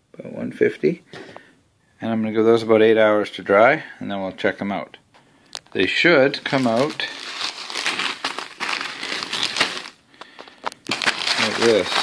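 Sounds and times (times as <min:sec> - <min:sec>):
dry beans rustling: 0:05.6 - 0:12.0
plastic bag crinkling: 0:05.6 - 0:12.0.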